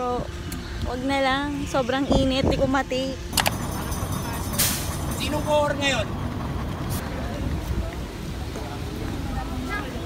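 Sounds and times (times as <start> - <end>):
steady low rumble: 0.0 - 9.7
faint voices: 6.8 - 10.0.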